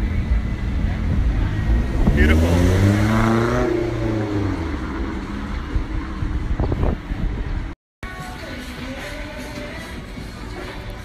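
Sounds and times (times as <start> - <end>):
passing engine: 0.0 - 7.8
road traffic rumbling: 0.0 - 7.8.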